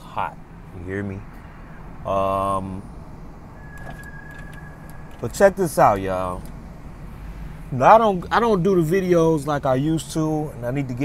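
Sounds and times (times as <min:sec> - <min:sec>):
faint high whine: 0:00.0 - 0:09.2
car cabin rumble: 0:02.9 - 0:10.2.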